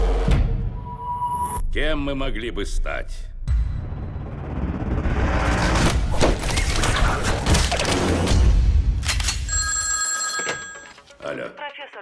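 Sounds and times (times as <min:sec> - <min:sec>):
telephone ringing: 0:09.4 - 0:12.0.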